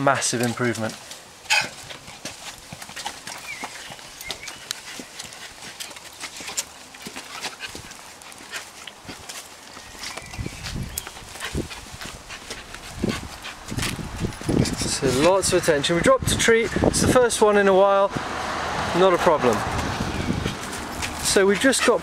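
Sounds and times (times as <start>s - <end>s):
footsteps on paved path: 0.0s - 22.0s.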